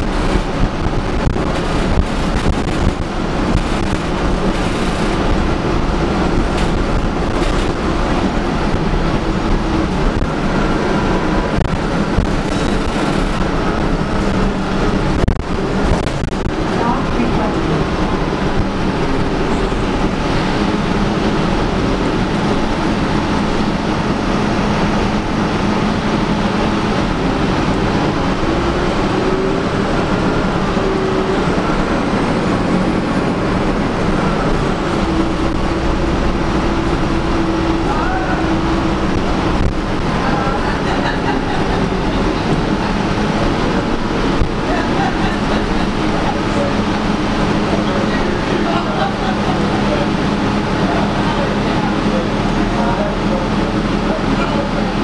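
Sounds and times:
bus engine and road noise: 0.0 - 55.0.

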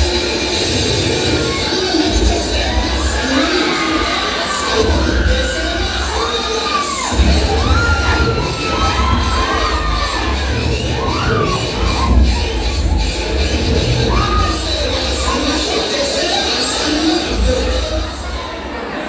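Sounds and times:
crowd cheering and shouting: 0.0 - 19.0.

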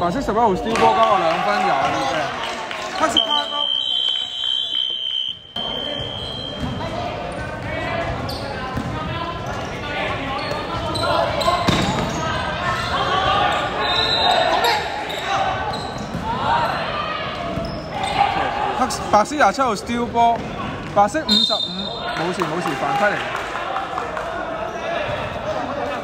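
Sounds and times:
players calling out: 0.5 - 26.0.

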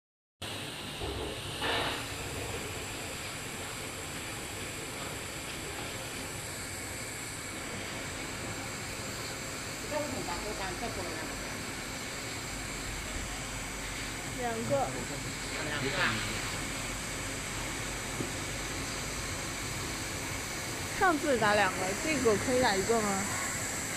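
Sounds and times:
machine steady hiss: 0.4 - 23.9.

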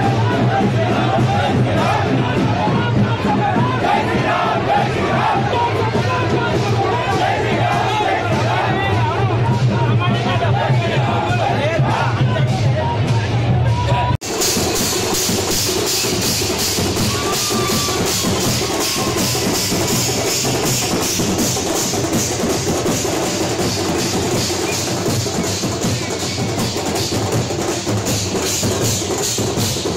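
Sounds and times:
drum band playing fast beat: 0.0 - 29.9
noisy crowd chatter: 0.0 - 29.9.

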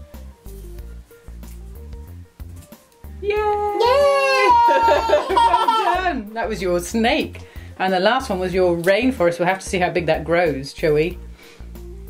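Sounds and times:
background music with steady beat: 0.0 - 12.0
young child crying out: 3.2 - 6.0.

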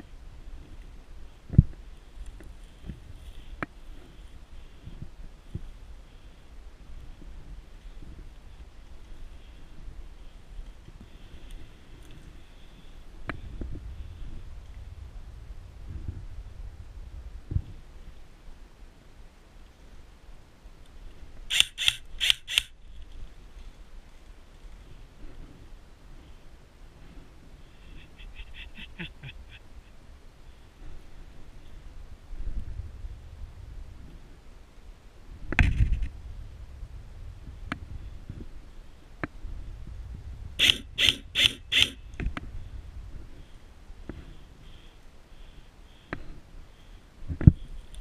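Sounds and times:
airsoft rifle shots: 40.6 - 42.0.

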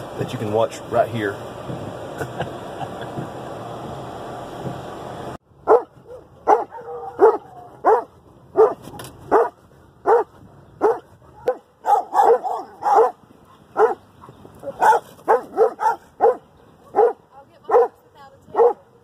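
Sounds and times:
dog barking sharply: 5.6 - 14.0, 14.6 - 18.0, 18.6 - 18.8.

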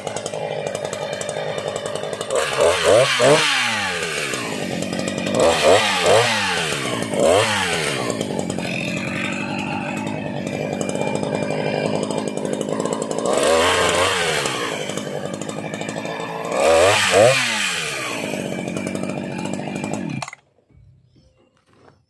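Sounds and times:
chainsaw engine revving and idling: 0.0 - 20.4.

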